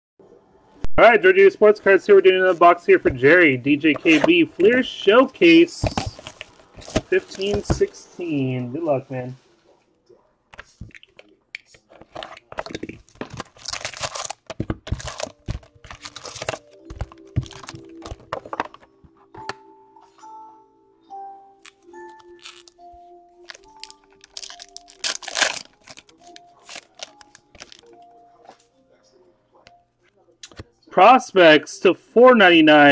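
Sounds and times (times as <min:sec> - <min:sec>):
card packs being torn open: 0:12.0 - 0:18.7, 0:21.6 - 0:22.8, 0:23.4 - 0:27.9.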